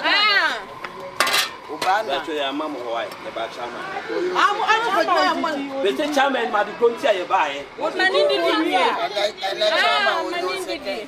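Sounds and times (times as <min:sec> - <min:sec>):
people talking: 0:00.0 - 0:11.0
metallic clatter: 0:01.2 - 0:02.0.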